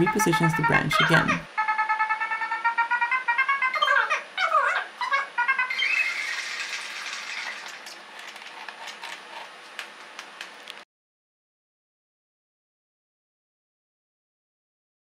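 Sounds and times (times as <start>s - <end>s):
gliding electronic tones: 0.0s - 4.2s, 5.0s - 8.0s.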